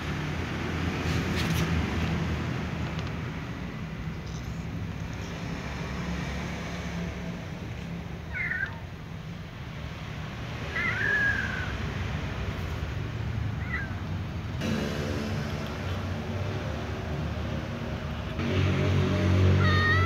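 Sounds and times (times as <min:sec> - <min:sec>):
cat meowing: 0:08.2 - 0:08.9, 0:10.6 - 0:11.7, 0:13.5 - 0:14.1, 0:19.6 - 0:20.0.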